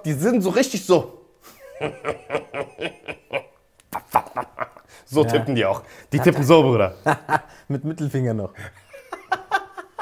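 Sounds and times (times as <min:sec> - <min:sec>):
man chuckling: 0:01.6 - 0:05.0.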